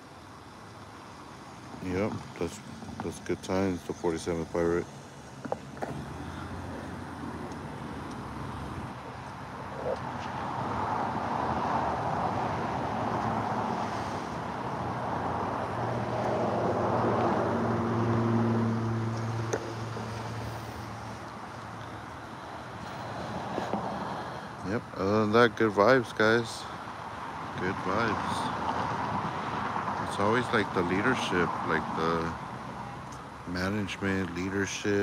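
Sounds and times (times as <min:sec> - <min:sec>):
car traffic passing: 0:00.0 - 0:35.0.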